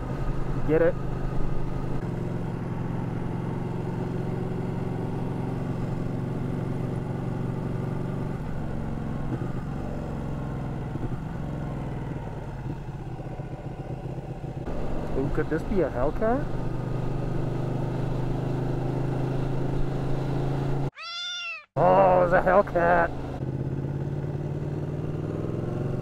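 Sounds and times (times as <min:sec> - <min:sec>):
motorcycle engine cruising: 0:00.0 - 0:21.0, 0:21.8 - 0:26.0.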